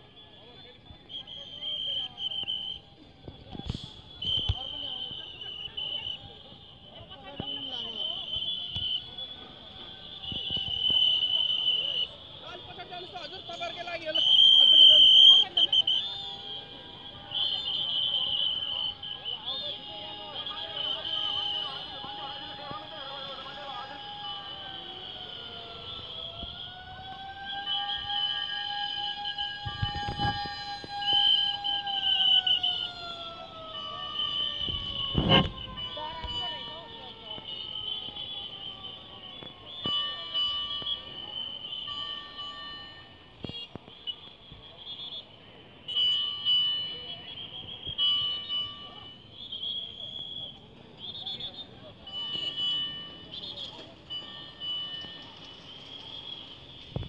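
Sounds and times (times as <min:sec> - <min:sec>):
fire engine siren wailing: 0:00.0 - 0:43.7
crowd voices: 0:00.0 - 0:57.0.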